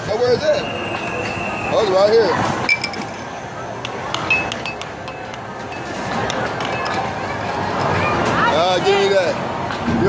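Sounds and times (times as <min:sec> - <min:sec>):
arcade noise: 0:00.7 - 0:10.0
air hockey puck clacking: 0:03.8 - 0:07.2.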